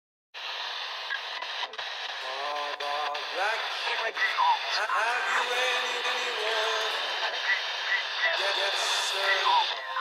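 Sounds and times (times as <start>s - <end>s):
radio static hiss: 0.4s - 10.0s.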